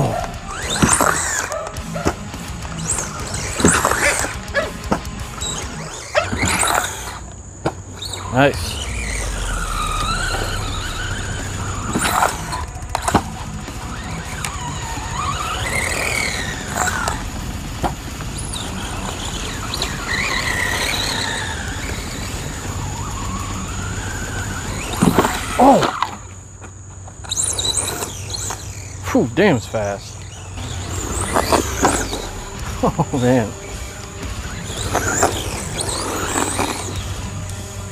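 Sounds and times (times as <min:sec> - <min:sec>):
electric motor whining: 0:00.0 - 0:37.9.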